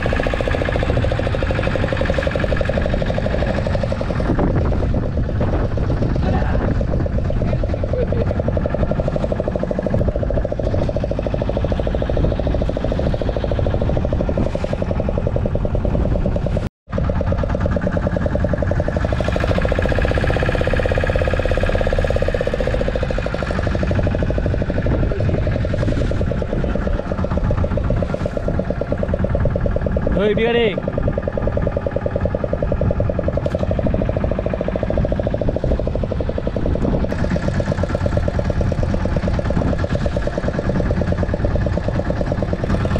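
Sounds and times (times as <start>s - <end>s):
boat engine running: 0.0s - 42.9s
wind and sea rumble: 0.0s - 42.9s.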